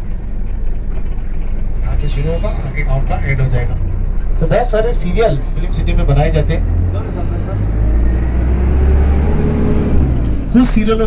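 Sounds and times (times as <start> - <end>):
faint whine: 0.0 - 7.3
bus engine and road rumble: 0.0 - 11.0.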